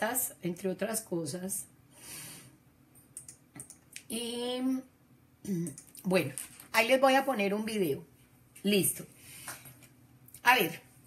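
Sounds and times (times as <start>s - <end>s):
computer keyboard keys clicking: 3.2s - 3.8s.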